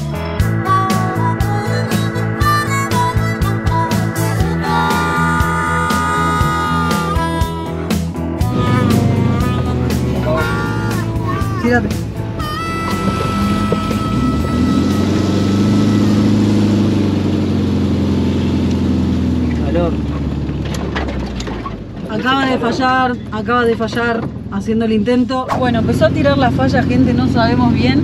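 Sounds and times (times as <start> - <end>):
music: 0.0 - 17.2
van engine droning: 0.0 - 28.0
voices: 8.4 - 16.5.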